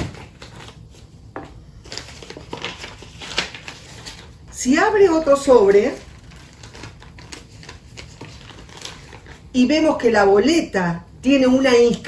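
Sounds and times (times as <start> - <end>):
paper rustling and crackling: 0.0 - 1.1, 1.8 - 4.5, 5.6 - 9.5.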